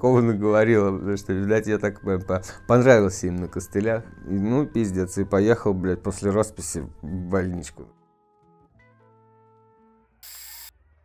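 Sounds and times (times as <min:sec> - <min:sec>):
held notes of background music: 0:00.0 - 0:10.0
aerosol spray can hiss: 0:10.2 - 0:10.7.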